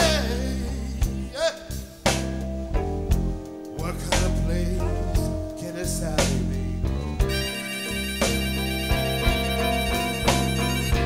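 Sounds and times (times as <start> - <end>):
blues band playing: 0.0 - 11.0
drum hits: 7.2 - 11.0
sustained lead note: 7.2 - 11.0.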